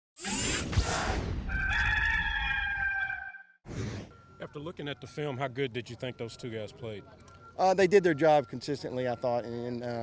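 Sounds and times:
rooster crowing: 1.5 - 3.5.

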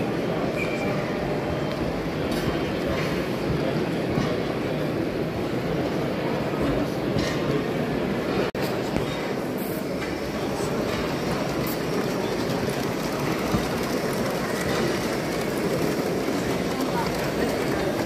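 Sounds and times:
crowd hubbub: 0.0 - 18.0
live steam locomotives running: 9.5 - 18.0.

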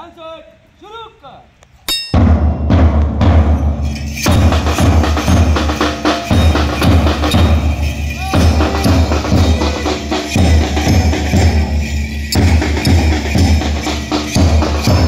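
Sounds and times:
bass drum thumping: 2.2 - 15.0
sharp quick drum strokes: 2.2 - 15.0.

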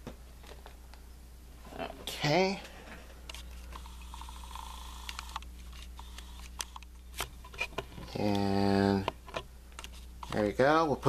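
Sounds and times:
low steady hum: 0.0 - 11.0.

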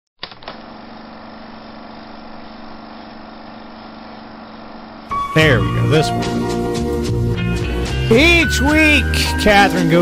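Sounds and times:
steady low hum with hiss: 0.2 - 6.4.

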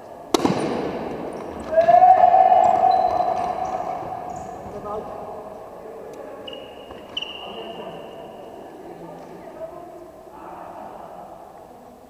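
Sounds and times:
bat cracking on ball: 0.3 - 1.9
sneaker squeaks on gym floor: 1.3 - 1.8, 2.6 - 4.8, 6.4 - 8.6
loud long held shout: 1.6 - 4.4.

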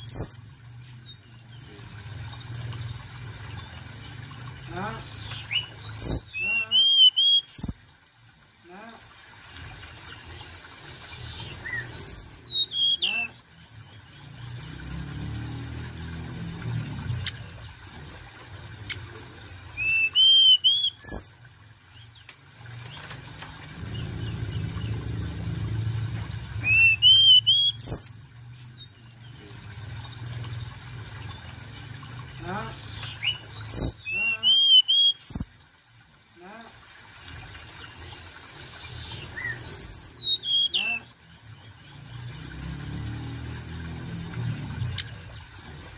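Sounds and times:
bird singing whistled phrases: 5.5 - 7.8, 11.6 - 13.4, 19.8 - 21.4, 26.6 - 28.2, 33.2 - 35.5, 39.4 - 41.1
low rumble: 23.6 - 26.7.

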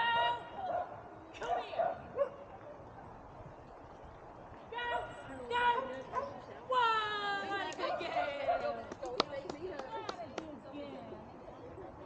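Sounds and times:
quiet outdoor background noise: 0.0 - 12.0.

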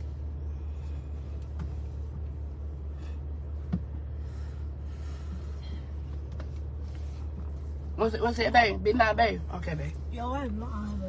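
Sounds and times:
car engine humming: 0.0 - 11.0.

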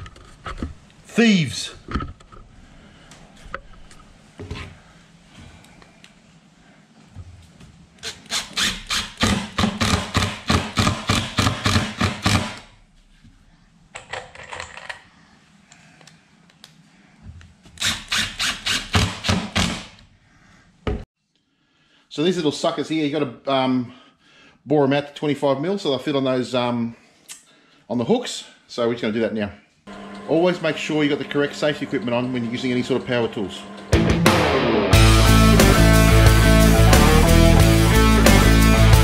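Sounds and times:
impact driver driving screws into wood: 8.0 - 12.7, 17.8 - 20.0.

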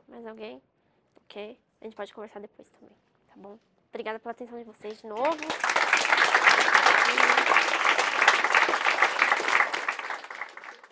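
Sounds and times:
audience applauding: 5.2 - 10.9.

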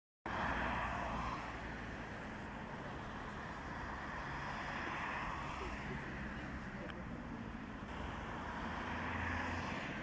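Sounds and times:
road traffic passing: 0.3 - 10.0.

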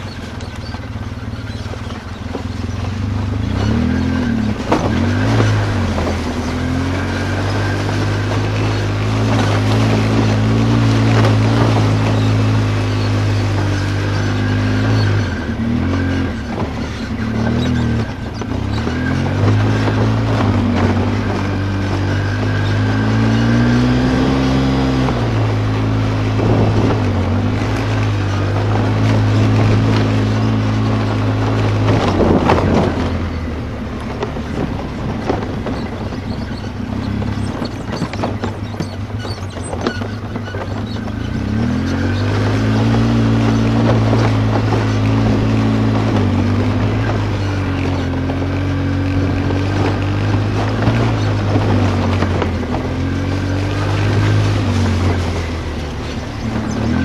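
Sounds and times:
atv engine revving: 0.0 - 57.0
knocks and rattles: 0.0 - 57.0.

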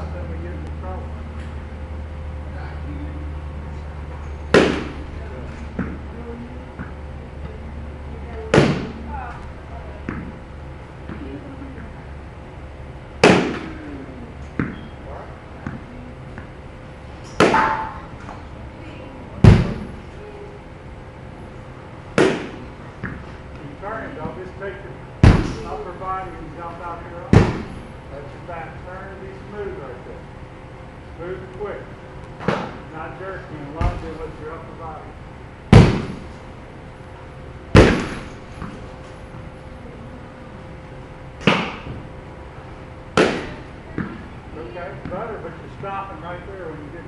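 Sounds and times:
bat hitting balls: 4.4 - 5.2, 8.5 - 9.0, 13.2 - 13.9, 14.5 - 15.0, 17.2 - 18.4, 19.4 - 20.0, 22.1 - 23.4, 25.2 - 25.9, 27.3 - 28.0, 32.4 - 32.9, 35.7 - 36.4, 37.7 - 38.9, 41.4 - 42.1, 43.1 - 44.3.

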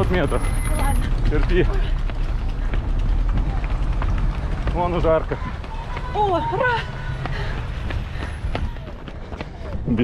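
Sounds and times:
running footfalls on asphalt: 0.0 - 10.0.

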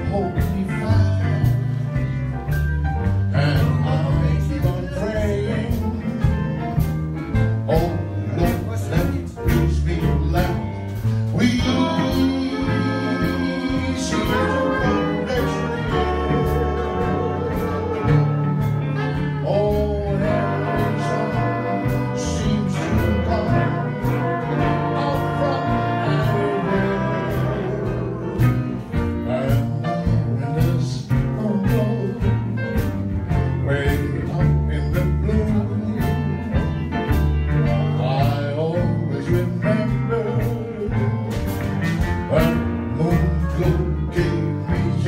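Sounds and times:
big band music: 0.0 - 45.0.

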